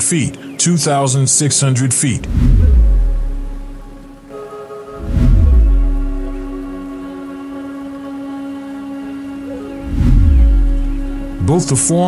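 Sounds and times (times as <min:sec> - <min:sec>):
deep booming swells: 0:02.2 - 0:04.3, 0:05.0 - 0:06.9, 0:09.8 - 0:11.7
held synth chords: 0:02.2 - 0:12.0.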